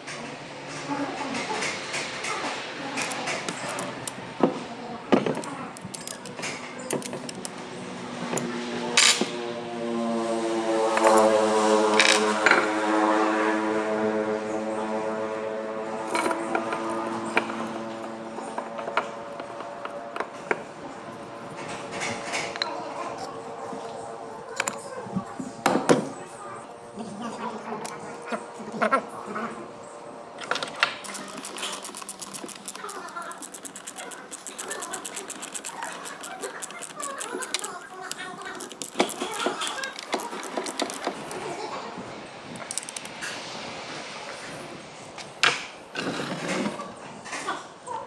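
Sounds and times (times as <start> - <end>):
metal clicks and clinks: 5.2 - 7.6, 30.6 - 41.4, 42.6 - 43.1.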